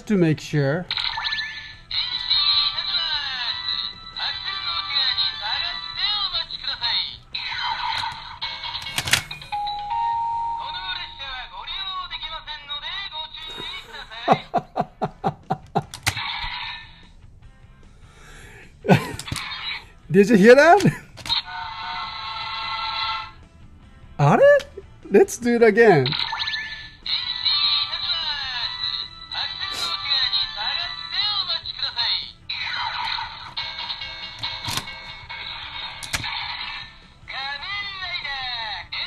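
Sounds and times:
recorded toy voice: 0.8s - 9.2s, 10.6s - 14.5s, 18.9s - 23.4s, 24.2s - 34.1s, 35.2s - 39.0s
toy music through tinny speaker: 0.9s - 14.3s, 25.8s - 39.0s.

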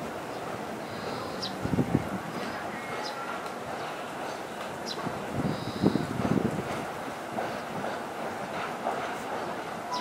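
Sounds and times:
freight train rolling past: 0.0s - 10.0s.

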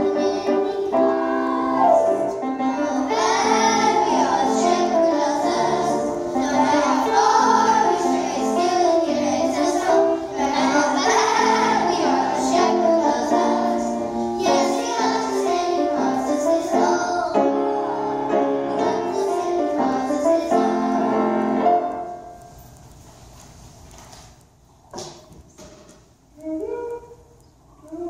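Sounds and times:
children's choir singing: 0.0s - 22.4s
piano chords: 0.0s - 22.6s.

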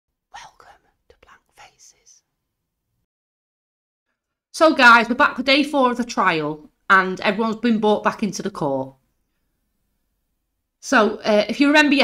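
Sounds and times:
person whispering: 0.3s - 2.2s.

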